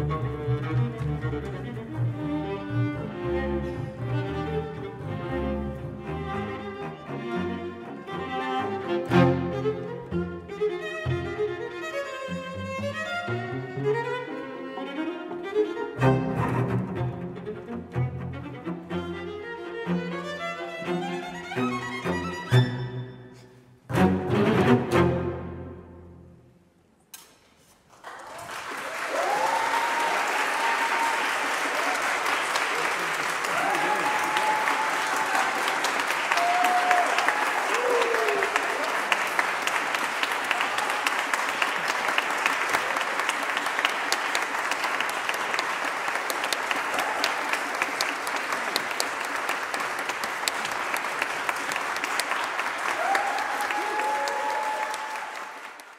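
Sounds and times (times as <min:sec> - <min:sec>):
audience applauding: 0:27.9 - 0:55.9.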